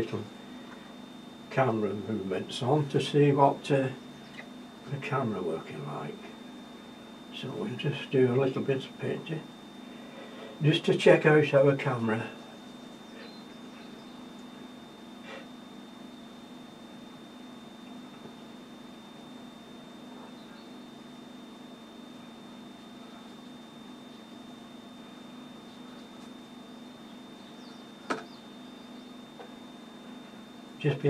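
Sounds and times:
high-pitched whine: 0.0s - 31.0s
low electrical hum: 0.0s - 31.0s.

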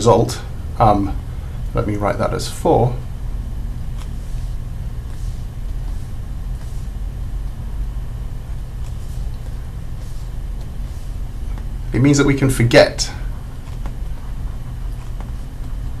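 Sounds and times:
low background hum: 0.0s - 16.0s
stylus scratching on tablet: 3.7s - 16.0s.

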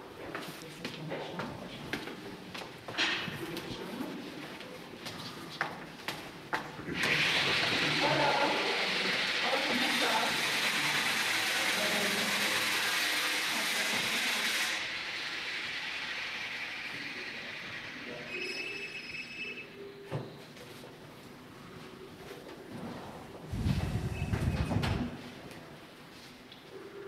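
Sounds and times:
brief high tone: 18.3s - 19.9s.

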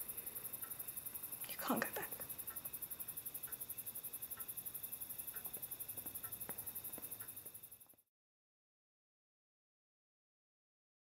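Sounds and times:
crickets trilling: 0.0s - 8.0s.

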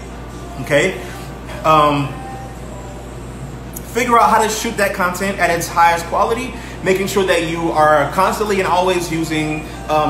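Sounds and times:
low background hum with hiss: 0.0s - 10.0s.

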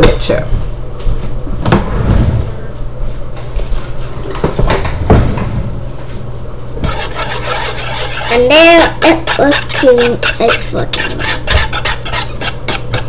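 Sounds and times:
utensil scraping a saucepan: 6.8s - 13.0s.

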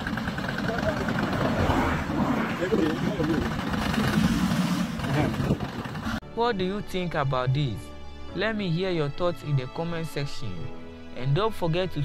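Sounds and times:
off-road vehicle engine running: 0.0s - 6.2s
people's voices: 0.4s - 3.7s.

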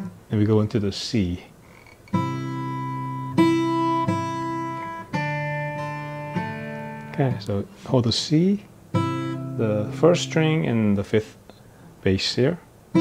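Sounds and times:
acoustic guitar fingerpicking: 1.7s - 7.9s, 8.6s - 10.6s.

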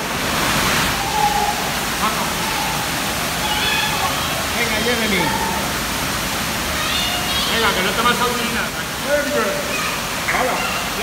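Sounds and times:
water rushing: 0.0s - 11.0s.

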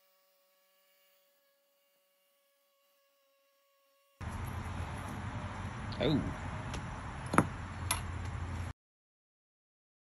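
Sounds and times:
metal tool knocking on concrete: 7.3s - 8.0s.

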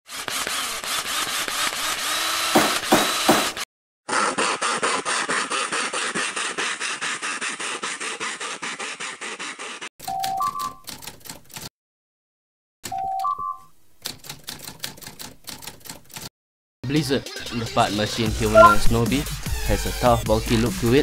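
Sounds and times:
hand-saw strokes: 0.1s - 9.9s
sharp knocks: 2.6s - 3.6s
rising electronic chime: 18.6s - 18.9s.

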